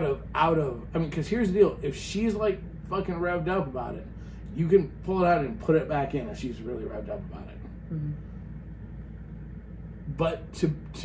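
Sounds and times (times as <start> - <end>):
low room tone hum: 0.0 - 11.0.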